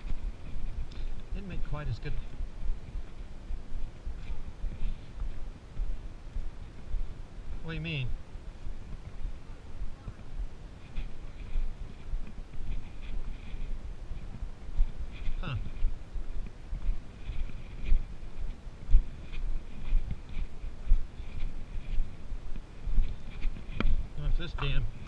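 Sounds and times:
footsteps on dirt trail: 0.0s - 25.0s.

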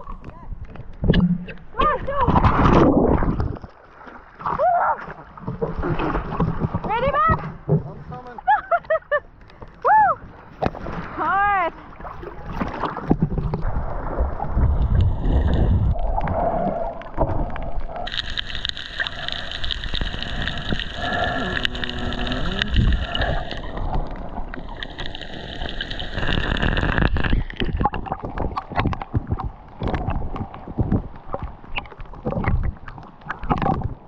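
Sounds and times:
underwater rushing and bubbling: 0.0s - 34.0s
rain pattering on sea surface: 17.0s - 31.2s.

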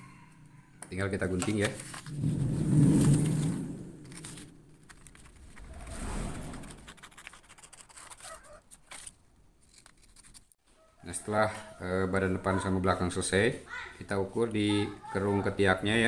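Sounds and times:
paper rustling and sliding: 1.3s - 10.6s
scissors cutting paper: 6.6s - 10.6s.

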